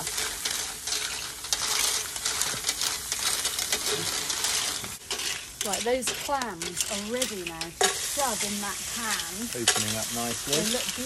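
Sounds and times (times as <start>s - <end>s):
clams sizzling on grill: 0.0s - 11.0s.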